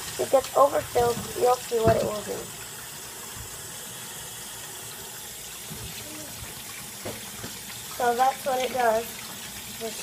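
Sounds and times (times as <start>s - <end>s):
faucet water running into sink: 0.0s - 10.0s.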